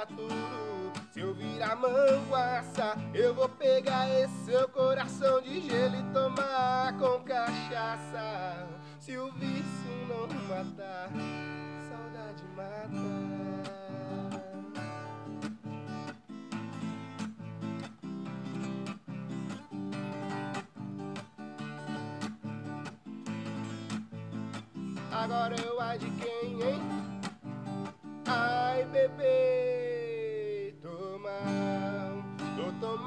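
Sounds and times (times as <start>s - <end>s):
acoustic guitar playing: 0.0s - 33.0s.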